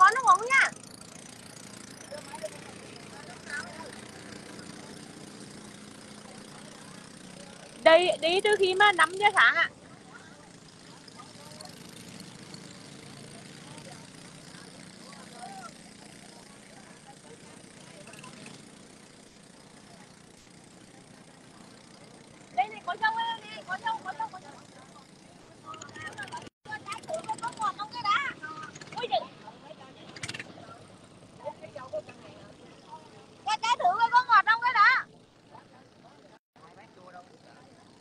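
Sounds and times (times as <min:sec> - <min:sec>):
people talking: 0:00.0 - 0:00.7, 0:06.2 - 0:11.7, 0:13.2 - 0:18.6, 0:20.8 - 0:38.0
boat engine drone: 0:00.0 - 0:38.0.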